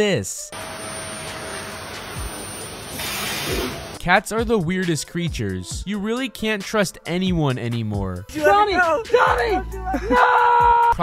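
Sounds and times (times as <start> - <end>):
vacuum cleaner running: 0.6 - 4.0.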